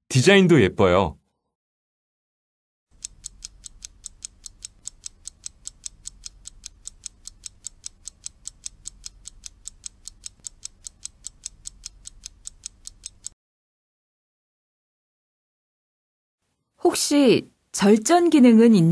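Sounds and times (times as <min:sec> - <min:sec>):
fast ticking clock timer: 0:02.9 - 0:13.4.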